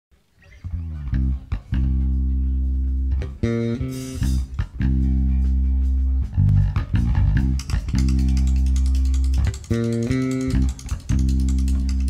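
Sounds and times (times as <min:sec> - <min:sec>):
electric bass guitar notes: 0:00.4 - 0:12.0.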